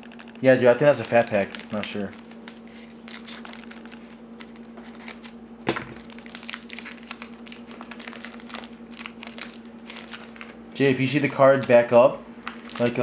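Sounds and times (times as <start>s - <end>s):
foil wrapper crinkling: 0.0s - 13.0s.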